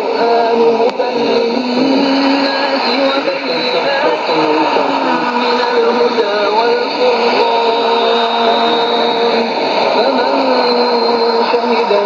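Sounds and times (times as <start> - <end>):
person chanting recitation: 0.0 - 12.0
radio hiss and static: 0.0 - 12.0.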